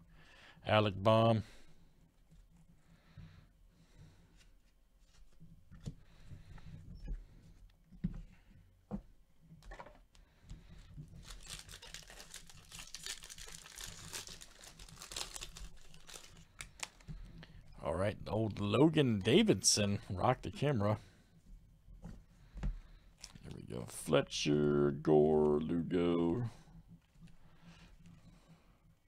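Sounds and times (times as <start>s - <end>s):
foil wrapper tearing and crinkling: 11.2s - 17.0s.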